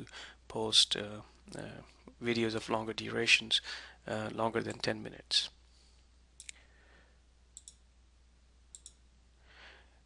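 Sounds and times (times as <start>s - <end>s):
soft breath: 5.7s - 7.2s, 9.4s - 10.0s
computer mouse clicks: 7.6s - 7.8s, 8.7s - 9.0s.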